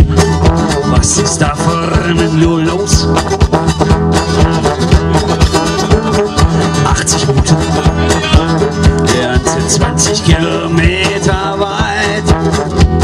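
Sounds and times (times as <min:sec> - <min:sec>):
brass horn playing: 0:00.0 - 0:10.8, 0:11.5 - 0:13.0
blues guitar: 0:00.0 - 0:13.0
fast clicking rhythm: 0:00.1 - 0:13.0.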